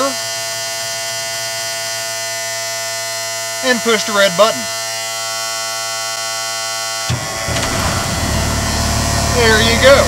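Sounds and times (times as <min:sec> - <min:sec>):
warning buzzer: 0:00.0 - 0:10.0
truck engine starting and running: 0:07.1 - 0:10.0.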